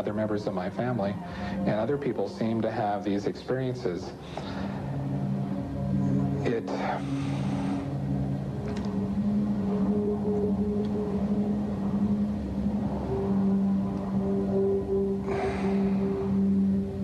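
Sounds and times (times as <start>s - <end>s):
low sustained drone music: 0.0s - 17.0s.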